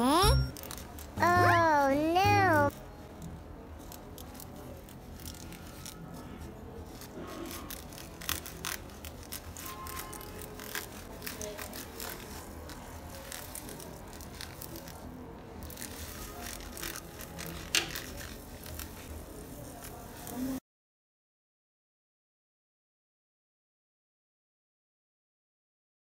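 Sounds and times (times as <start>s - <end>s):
plastic bag crinkling: 6.9s - 20.5s
scissors snipping plastic: 15.8s - 19.0s.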